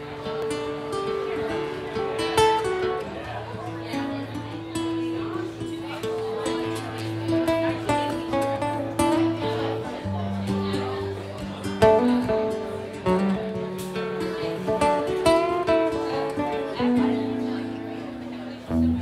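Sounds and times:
acoustic guitars picking melody: 0.0s - 19.0s.

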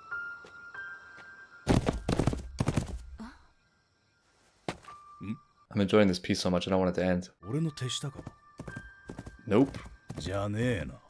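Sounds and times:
horse hooves galloping: 1.7s - 3.1s, 8.1s - 10.9s.

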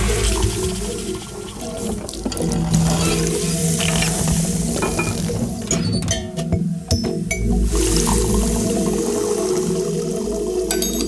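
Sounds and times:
running water: 0.0s - 11.0s.

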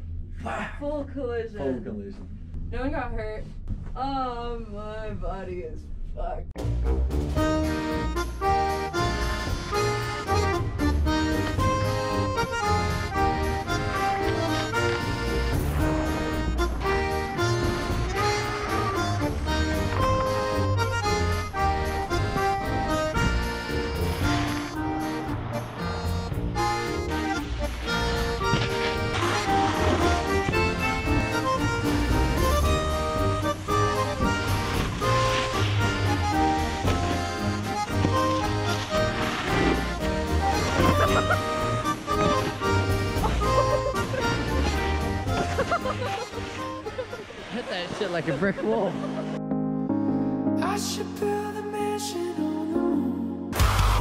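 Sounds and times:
melodic music with pulsing bass: 6.6s - 47.1s, 48.5s - 54.0s.

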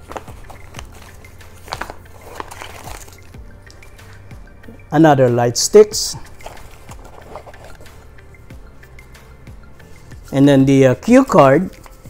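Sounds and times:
rustling in fabric pouch: 0.0s - 3.4s, 6.0s - 8.2s.

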